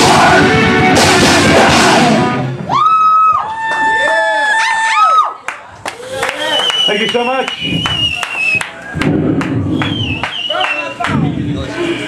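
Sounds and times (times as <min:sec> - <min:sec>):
heavy metal band playing: 0:00.0 - 0:02.7
audience whooping: 0:02.6 - 0:11.1.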